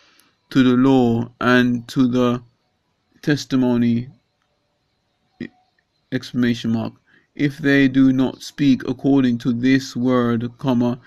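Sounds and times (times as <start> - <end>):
man reading aloud: 0.5 - 2.4, 3.2 - 4.1, 6.2 - 11.0.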